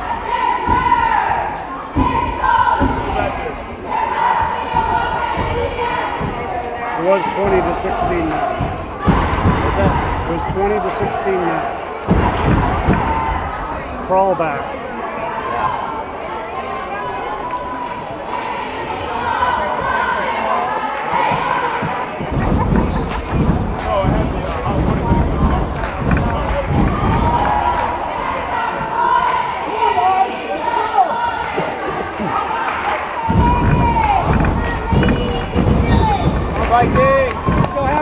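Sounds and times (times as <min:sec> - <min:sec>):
crowd chatter and shouting: 0:00.0 - 0:38.0
dull low thuds: 0:07.4 - 0:11.2, 0:12.1 - 0:13.6, 0:21.3 - 0:29.0, 0:33.2 - 0:38.0.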